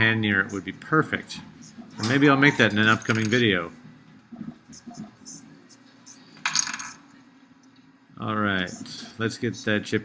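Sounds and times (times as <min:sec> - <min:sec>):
electronic parts clinking: 0:01.9 - 0:03.6, 0:06.2 - 0:07.1.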